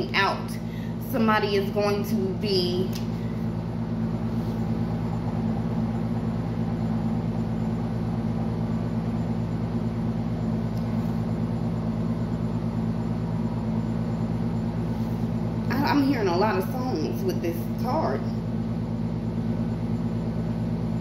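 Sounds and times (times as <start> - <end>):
low motor hum: 0.0 - 21.0.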